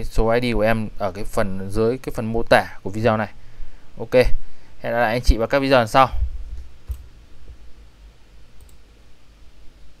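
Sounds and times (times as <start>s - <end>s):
low room hum: 0.0s - 10.0s
computer mouse clicks: 6.8s - 7.1s, 8.6s - 8.9s.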